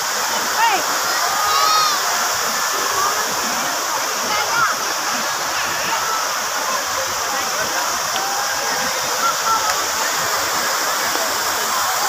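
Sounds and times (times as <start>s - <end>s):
fountain water splashing: 0.0s - 12.0s
people talking: 0.1s - 12.0s.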